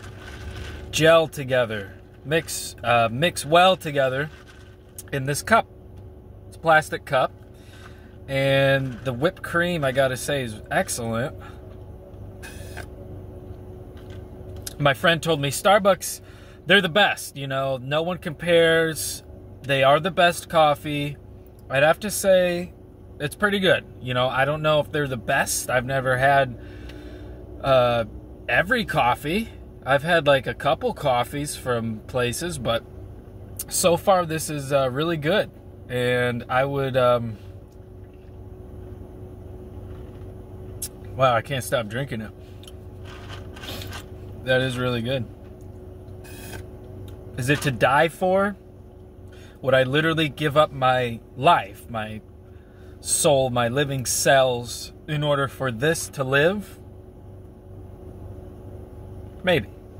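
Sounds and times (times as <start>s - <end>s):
low hum inside car: 0.0s - 59.9s.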